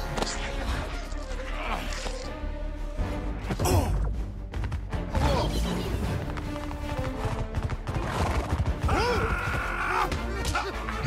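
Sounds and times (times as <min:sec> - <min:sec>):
orchestral score: 0:00.0 - 0:11.0
heavy hooves pounding: 0:06.0 - 0:09.9.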